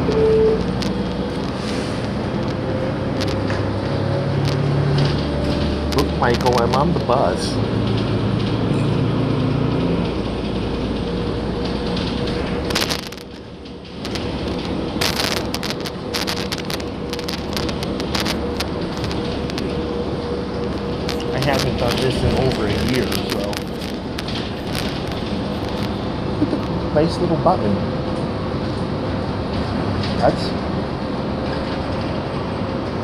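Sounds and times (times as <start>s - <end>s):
rattles and clicks: 0.0s - 26.9s
bus cabin rumble and hiss: 0.0s - 33.0s.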